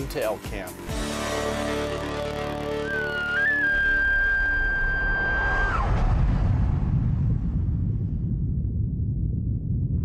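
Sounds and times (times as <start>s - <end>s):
high whistle dropping in pitch: 2.8s - 6.1s
deep continuous rumble: 5.2s - 10.0s.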